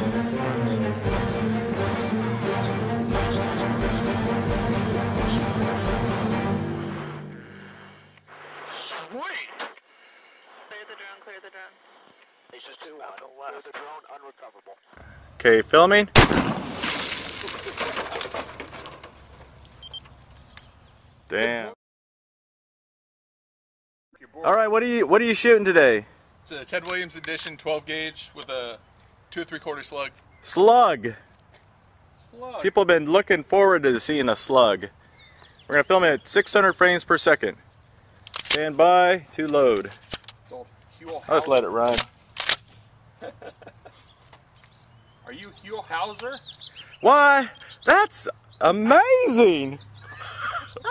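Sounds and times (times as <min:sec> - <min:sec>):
shotgun blast with echo: 0:16.2 - 0:17.0
shotgun handling scrape: 0:16.4 - 0:19.9, 0:38.2 - 0:38.6, 0:39.7 - 0:40.4, 0:41.9 - 0:42.8
faint gun clicks: 0:38.2 - 0:38.6, 0:41.9 - 0:42.9.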